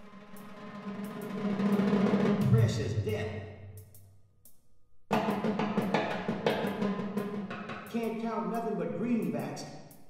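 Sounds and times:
rapid drum strikes with sticks: 0:00.0 - 0:03.3, 0:05.1 - 0:09.6.

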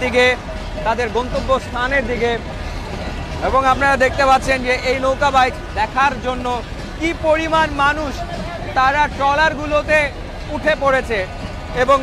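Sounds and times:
commentator speaking: 0:00.0 - 0:02.6, 0:03.4 - 0:12.0.

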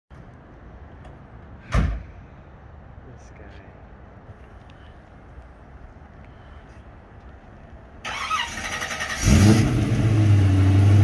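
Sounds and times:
loud thump: 0:01.7 - 0:02.0.

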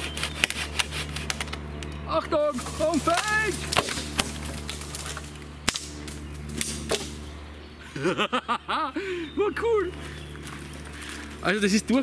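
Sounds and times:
tree trunk cracking: 0:00.0 - 0:07.2.

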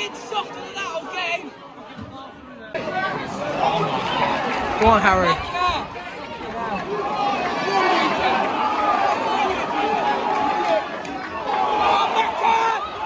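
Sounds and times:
crowd babble: 0:00.0 - 0:13.0.

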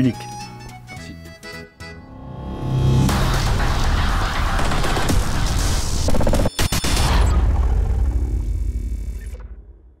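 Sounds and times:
deep rumbling logo effect: 0:02.2 - 0:06.2.

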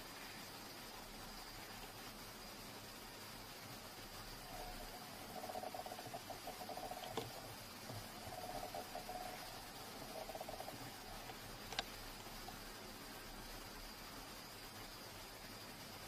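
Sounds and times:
cat purring: 0:04.0 - 0:13.6
small clicks: 0:04.6 - 0:12.5.

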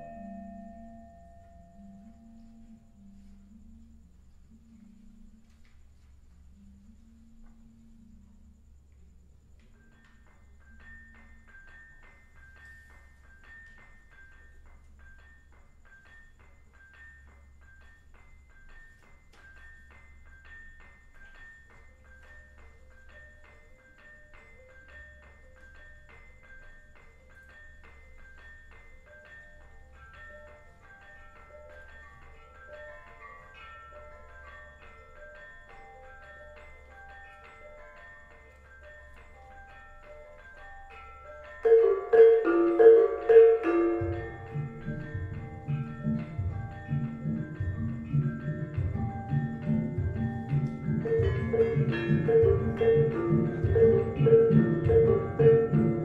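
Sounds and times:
lower gamelan note line: 0:00.0 - 0:04.1, 0:41.6 - 0:56.0
gamelan metallophones playing: 0:00.0 - 0:04.6, 0:09.8 - 0:56.0
low beats: 0:43.7 - 0:56.0.

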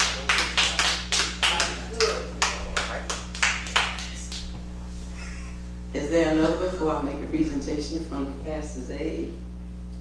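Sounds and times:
hand claps: 0:00.0 - 0:04.5
steady low hum: 0:00.0 - 0:10.0.

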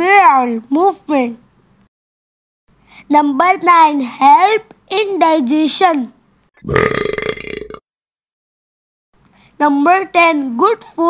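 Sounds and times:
man burping loudly: 0:06.6 - 0:07.8.

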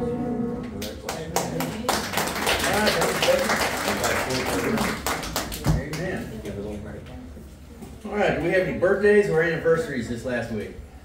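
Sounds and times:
congregation clapping: 0:00.8 - 0:06.1.

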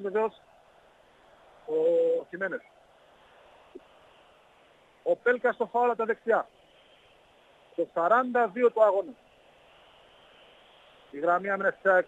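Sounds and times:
radio commentary: 0:00.0 - 0:00.4, 0:01.7 - 0:02.7, 0:05.0 - 0:06.6, 0:07.7 - 0:09.2, 0:11.1 - 0:12.0
faint background hiss: 0:00.0 - 0:12.0.

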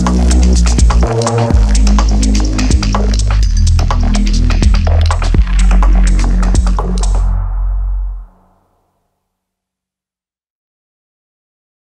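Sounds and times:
deep synth bass: 0:00.0 - 0:08.5.

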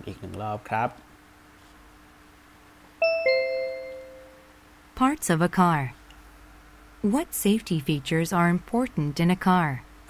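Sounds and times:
two-note ding-dong chime: 0:03.0 - 0:04.5.

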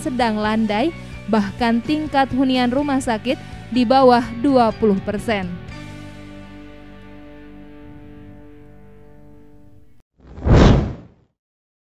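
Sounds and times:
whoosh sound effect: 0:10.3 - 0:11.1.

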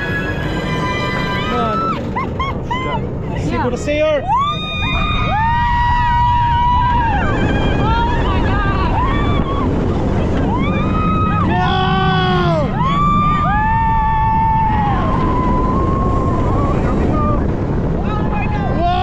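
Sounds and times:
riders screaming: 0:00.0 - 0:03.1, 0:04.2 - 0:19.0
roller coaster train rumble: 0:00.0 - 0:19.0
wind on microphone: 0:00.0 - 0:19.0.

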